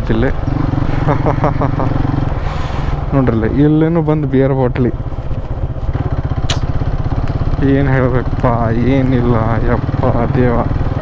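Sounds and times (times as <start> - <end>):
motorcycle engine running: 0.0 - 11.0
person's voice: 3.1 - 5.0, 7.6 - 11.0.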